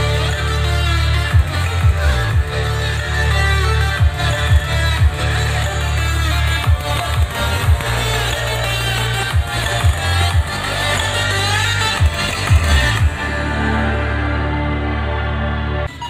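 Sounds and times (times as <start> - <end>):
electronic dance music: 0.0 - 16.0.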